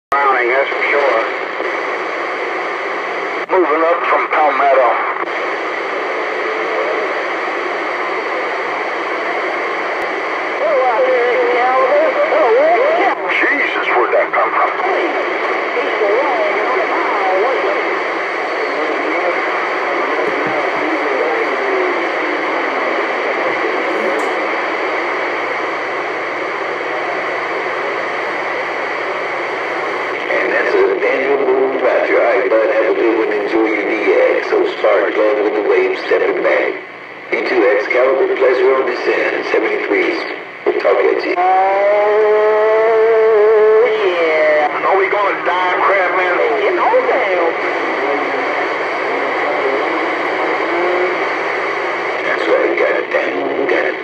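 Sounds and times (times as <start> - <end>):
distorted radio voices: 0.1 - 54.0
radio static hiss: 0.1 - 54.0.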